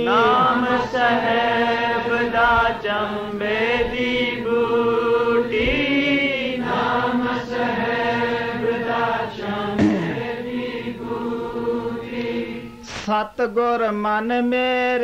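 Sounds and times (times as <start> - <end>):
voices singing a hymn: 0.0 - 13.1.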